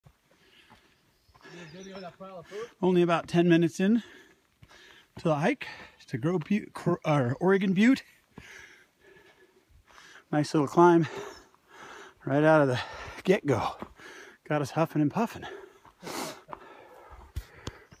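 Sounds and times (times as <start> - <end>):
footsteps on dirt trail: 0.0 - 18.0
person breathing heavily: 0.3 - 1.8, 4.0 - 6.0, 8.2 - 10.3, 11.0 - 14.4, 15.4 - 18.0
man talking: 1.6 - 4.1, 5.2 - 8.1, 10.3 - 11.2, 12.2 - 13.8, 14.4 - 15.6.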